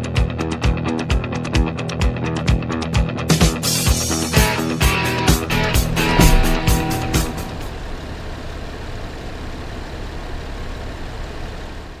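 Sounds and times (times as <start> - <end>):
background music with a beat: 0.0 - 7.7
car cabin rumble: 5.4 - 12.0.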